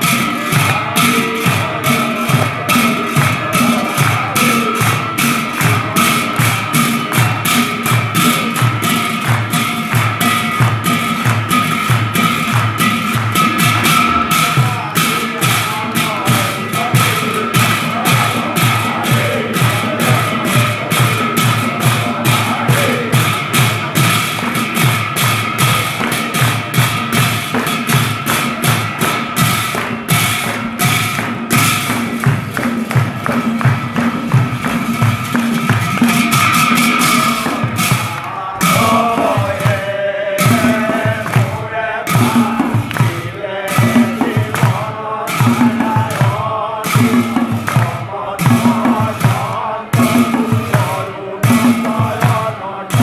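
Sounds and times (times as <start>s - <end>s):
brass cymbals clashing: 0.0s - 53.0s
drums beaten fast with sticks: 0.0s - 53.0s
voices chanting: 0.0s - 53.0s
hands clapping: 2.3s - 18.6s, 22.6s - 39.8s, 40.4s - 48.0s.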